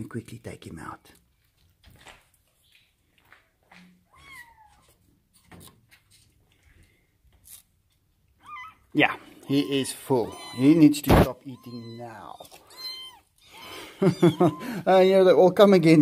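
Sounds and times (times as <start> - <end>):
kitten mewing: 8.4 - 14.9.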